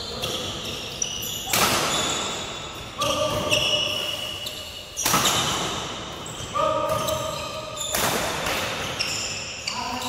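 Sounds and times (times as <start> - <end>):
shoes squealing on floor: 0.0 - 10.0
racket hitting shuttlecock: 1.5 - 2.4, 5.0 - 5.9, 6.7 - 9.0.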